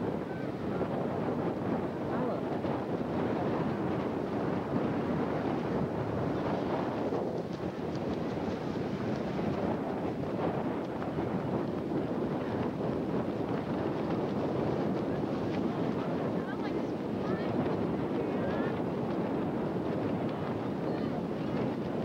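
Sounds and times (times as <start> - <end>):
surf washing in: 0.0 - 22.0
wind buffeting microphone: 0.0 - 22.0.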